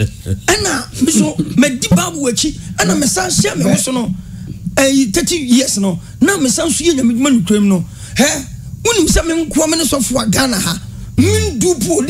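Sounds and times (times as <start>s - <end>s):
people talking: 0.0s - 4.2s, 4.8s - 12.0s.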